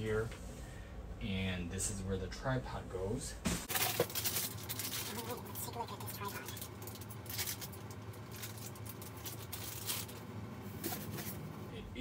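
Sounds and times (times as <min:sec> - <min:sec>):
plastic bag rustling: 0:03.6 - 0:11.4.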